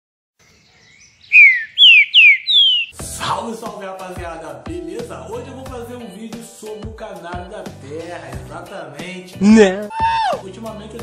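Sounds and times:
whistled notes sliding down: 0:01.3 - 0:03.0.

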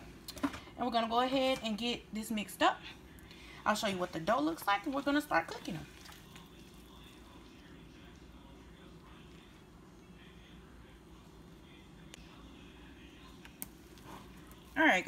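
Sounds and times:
hand kneading wet mixture: 0:03.8 - 0:09.7.

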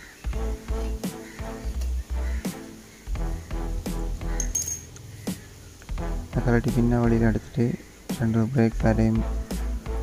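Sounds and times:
background music with steady beat: 0:00.0 - 0:10.0
metallic spanner clink: 0:04.4 - 0:05.0.

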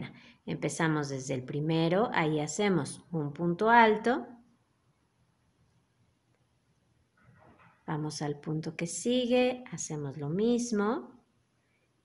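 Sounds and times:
woman speaking: 0:00.0 - 0:04.4, 0:07.9 - 0:11.2.

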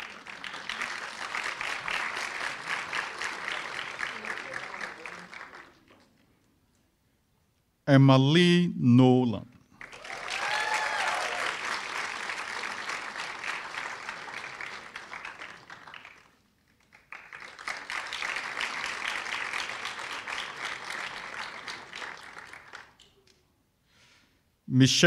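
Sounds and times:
audience applauding: 0:00.0 - 0:06.2, 0:09.8 - 0:23.3.

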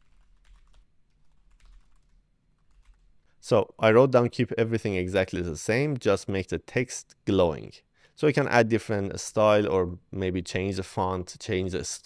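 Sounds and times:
typing on computer keyboard: 0:00.0 - 0:03.1.

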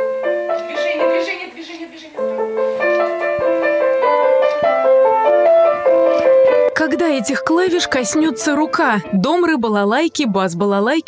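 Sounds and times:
child playing piano melody: 0:02.2 - 0:09.6.

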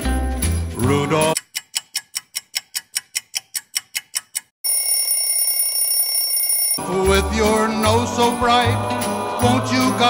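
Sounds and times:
clock ticking: 0:00.8 - 0:04.6
alarm clock ringing: 0:04.6 - 0:10.0.

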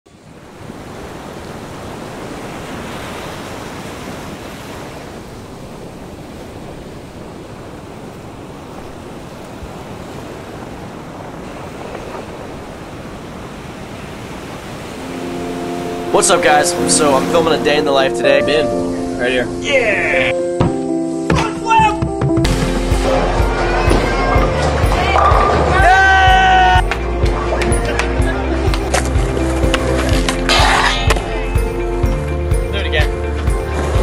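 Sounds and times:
small waves washing on beach: 0:00.1 - 0:18.2
music: 0:15.0 - 0:34.0.

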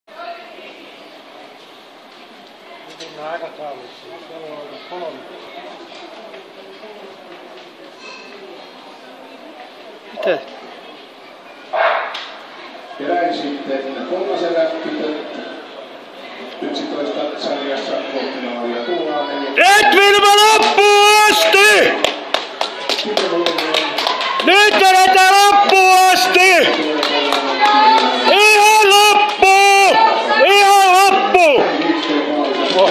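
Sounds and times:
faint distant voices: 0:00.1 - 0:32.9
open-air background noise: 0:00.1 - 0:32.9
spectator shouting cheers: 0:19.6 - 0:22.0, 0:24.3 - 0:26.8, 0:27.6 - 0:31.7
hand clapping: 0:22.0 - 0:24.8, 0:25.4 - 0:25.9.

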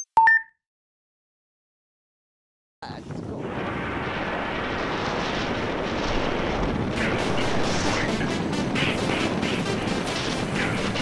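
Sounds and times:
wind rushing on microphone: 0:02.8 - 0:11.0.

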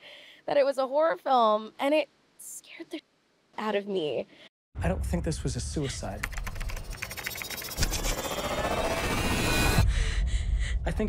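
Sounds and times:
low rumble: 0:04.8 - 0:06.9, 0:07.8 - 0:11.0
keyboard clicks: 0:06.1 - 0:08.0
loud noisy swell: 0:06.8 - 0:09.9.

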